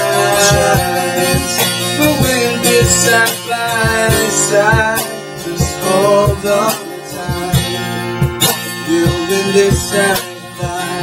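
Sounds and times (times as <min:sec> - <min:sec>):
cajon beat: 0:00.0 - 0:11.0
person singing: 0:00.0 - 0:11.0
strummed acoustic guitar: 0:00.0 - 0:11.0.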